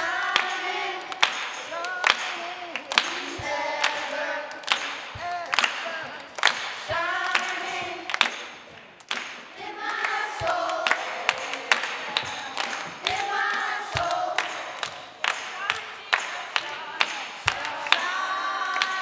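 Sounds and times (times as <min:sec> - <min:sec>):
children's choir singing: 0:00.0 - 0:19.0
hand claps: 0:00.0 - 0:19.0.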